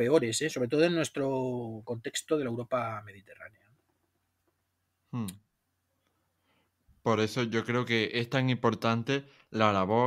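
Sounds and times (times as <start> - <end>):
man saying hmm: 5.1 - 5.4.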